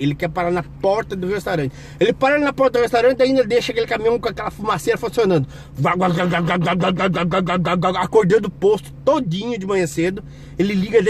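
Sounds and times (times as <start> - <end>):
man imitating engine with voice: 0.0 - 11.0.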